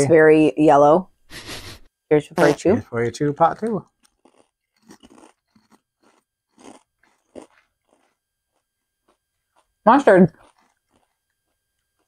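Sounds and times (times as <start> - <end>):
potato chips crunching: 3.5 - 9.7, 10.3 - 11.3.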